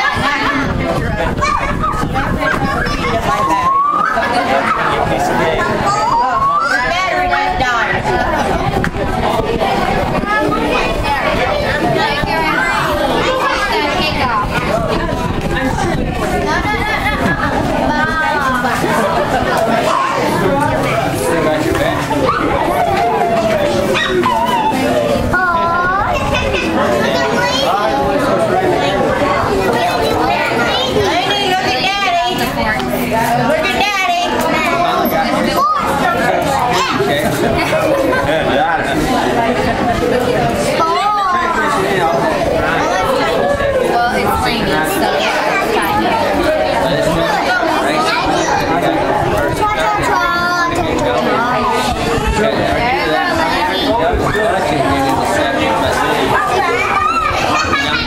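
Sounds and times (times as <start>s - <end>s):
children and adults chattering: 0.0s - 58.0s.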